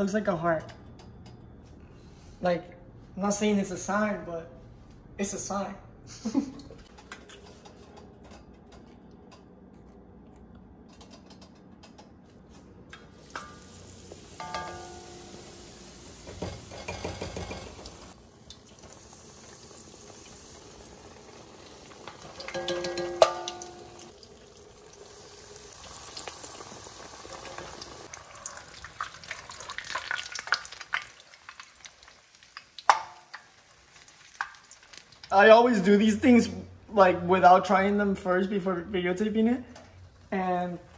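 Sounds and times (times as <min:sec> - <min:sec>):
food deep-frying in oil: 0:13.1 - 0:35.5.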